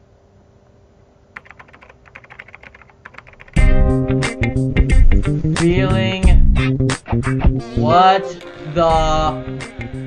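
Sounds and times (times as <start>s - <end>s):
computer keyboard typing: 1.4s - 3.7s
loud music with heavy bass: 3.6s - 10.0s.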